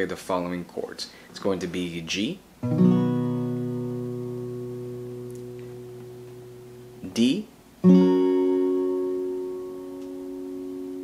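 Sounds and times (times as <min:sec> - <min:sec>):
acoustic guitar chord ringing: 0:02.6 - 0:07.2, 0:07.8 - 0:11.0.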